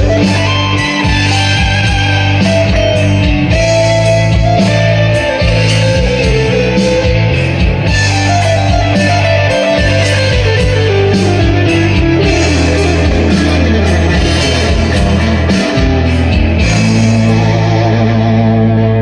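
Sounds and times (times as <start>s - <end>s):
electric guitar lead: 0.0s - 19.0s
rock backing track: 0.0s - 19.0s.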